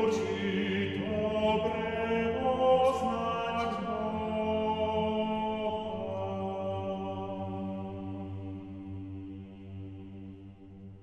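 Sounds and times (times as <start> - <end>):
mixed choir singing a hymn: 0.0 - 10.5.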